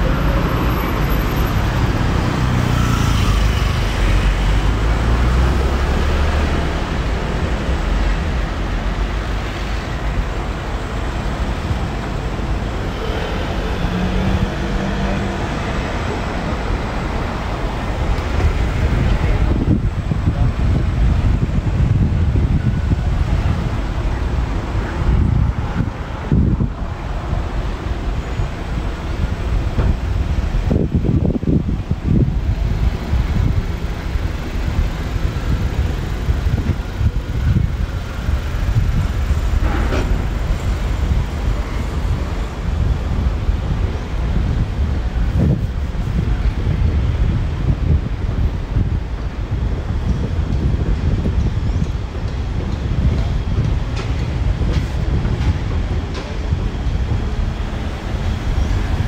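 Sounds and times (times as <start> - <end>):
cars driving past: 0.0 - 59.0.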